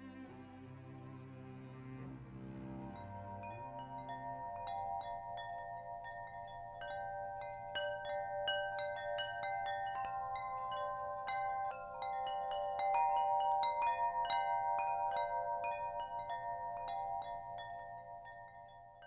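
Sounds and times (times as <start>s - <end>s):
wind chimes ringing: 1.8s - 19.0s.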